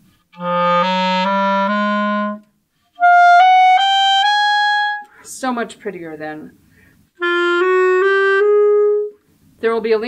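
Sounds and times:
clarinet playing rising notes: 0:00.1 - 0:05.2, 0:07.2 - 0:09.2.

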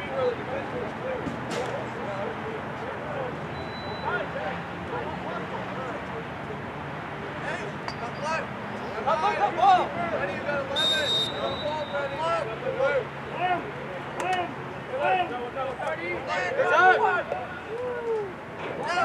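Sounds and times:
referee's whistle blast: 0:03.5 - 0:04.1, 0:10.8 - 0:12.2
distant shouting of players: 0:07.5 - 0:19.0.

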